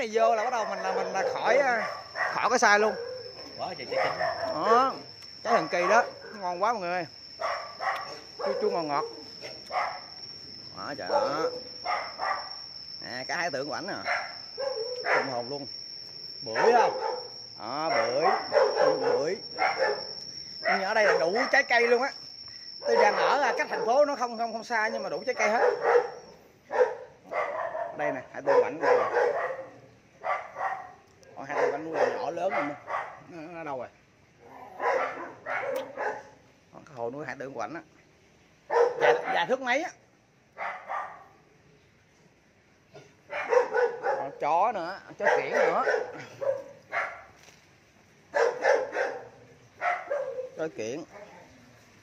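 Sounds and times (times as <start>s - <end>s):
dog barking: 0.1s - 6.7s, 7.4s - 10.1s, 11.0s - 12.6s, 14.0s - 15.4s, 16.5s - 22.0s, 22.8s - 24.2s, 25.0s - 33.3s, 34.7s - 36.4s, 38.7s - 39.6s, 40.6s - 41.4s, 43.0s - 44.4s, 45.1s - 47.4s, 48.3s - 51.5s.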